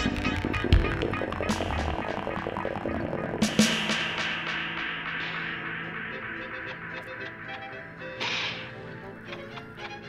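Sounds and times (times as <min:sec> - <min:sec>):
cartoon music: 0:00.0 - 0:04.6
sharp whip-like swish: 0:05.0 - 0:08.8.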